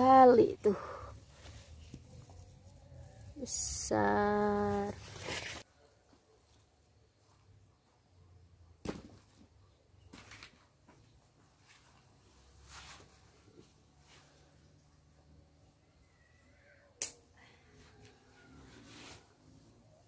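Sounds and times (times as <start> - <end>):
leaves rustling: 0.7 - 5.6.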